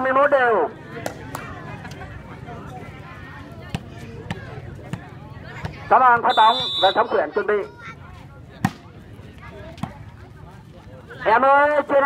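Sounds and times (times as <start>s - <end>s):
faint crowd chatter: 0.0s - 12.0s
hand slapping volleyball: 1.0s - 1.5s.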